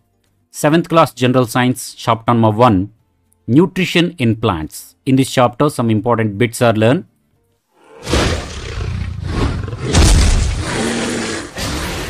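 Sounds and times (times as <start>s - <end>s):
loud rough dragon roar: 7.8s - 12.0s.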